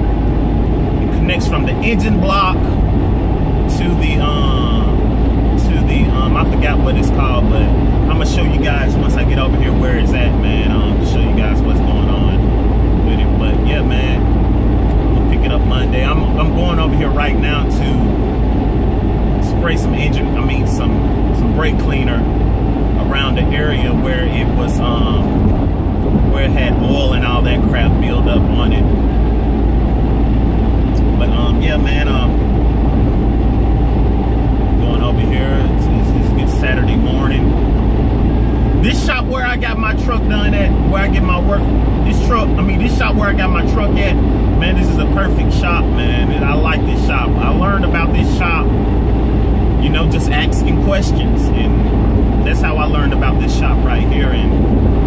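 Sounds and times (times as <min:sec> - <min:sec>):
car road and engine noise: 0:00.0 - 0:55.0
man talking: 0:01.0 - 0:02.8, 0:03.7 - 0:05.0, 0:05.6 - 0:14.3, 0:15.1 - 0:18.2, 0:19.4 - 0:22.3, 0:23.0 - 0:25.5, 0:26.2 - 0:29.0, 0:31.0 - 0:32.4, 0:34.8 - 0:37.5, 0:38.8 - 0:48.7, 0:49.8 - 0:54.6.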